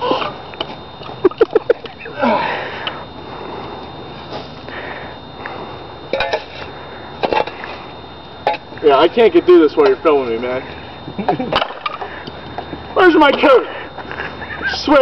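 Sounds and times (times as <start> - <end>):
laughter: 1.2 - 2.0, 11.1 - 11.8, 14.0 - 14.8.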